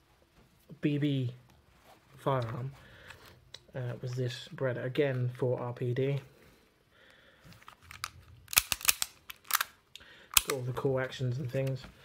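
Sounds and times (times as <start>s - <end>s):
pistol mechanical clicks: 7.9s - 10.6s.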